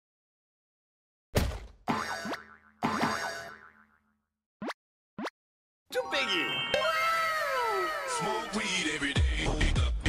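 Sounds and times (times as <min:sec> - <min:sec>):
cartoon boing sound effect: 0:01.9 - 0:04.0.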